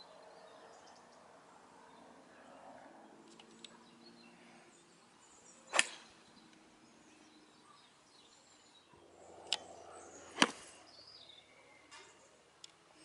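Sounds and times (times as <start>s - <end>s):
golf club striking ball: 5.7s - 6.2s, 10.3s - 10.7s
light click: 9.4s - 9.7s.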